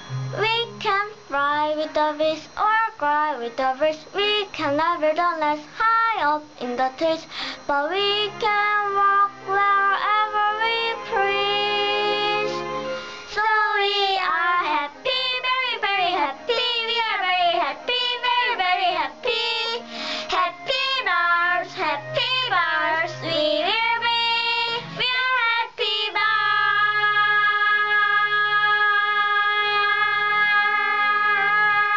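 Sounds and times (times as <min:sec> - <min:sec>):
backing music: 0:00.0 - 0:01.8, 0:07.9 - 0:31.9
child singing: 0:00.4 - 0:12.6, 0:13.4 - 0:31.9.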